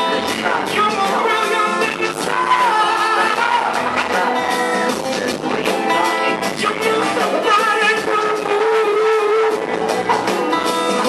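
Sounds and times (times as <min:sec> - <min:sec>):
man singing into a microphone: 0:00.0 - 0:09.9
live pop-rock band playing: 0:00.0 - 0:11.0.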